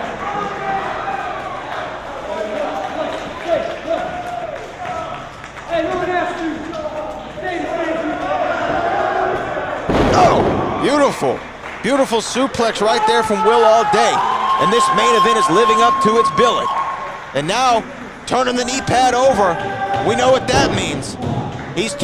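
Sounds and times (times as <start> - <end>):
voices calling out in a hall: 0.0 - 11.7
thuds on a wrestling ring: 9.9 - 10.8.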